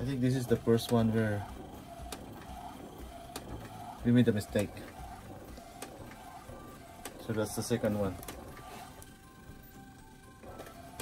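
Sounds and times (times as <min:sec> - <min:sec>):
printer motor hum: 0:00.0 - 0:11.0.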